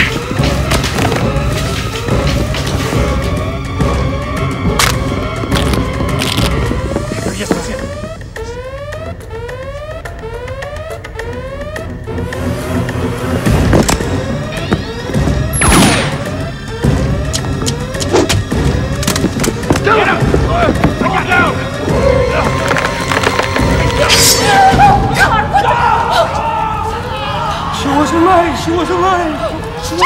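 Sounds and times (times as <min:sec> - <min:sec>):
electronic film score: 0:00.0 - 0:30.0.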